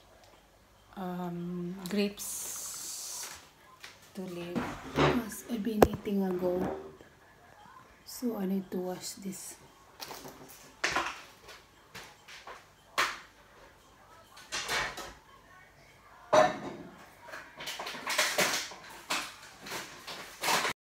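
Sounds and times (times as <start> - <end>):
dishes clattering: 4.5 - 6.0, 16.3 - 20.7.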